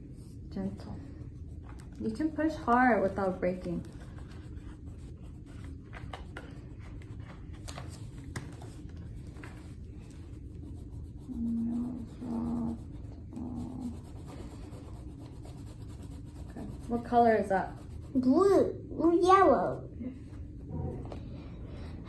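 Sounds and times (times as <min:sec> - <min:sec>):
crayons scratching on paper: 0:00.5 - 0:19.8.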